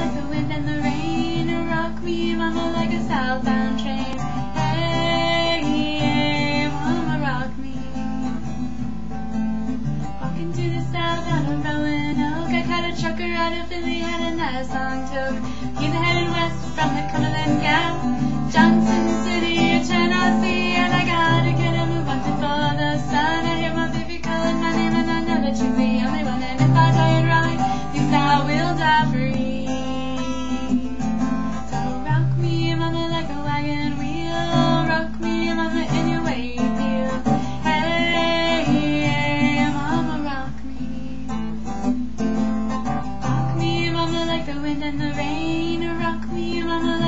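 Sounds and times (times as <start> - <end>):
acoustic guitar strumming: 0.0 - 47.0.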